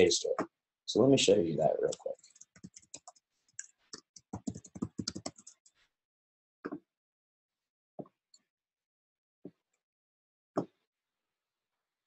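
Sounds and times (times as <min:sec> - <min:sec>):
typing on computer keyboard: 0:01.9 - 0:05.6.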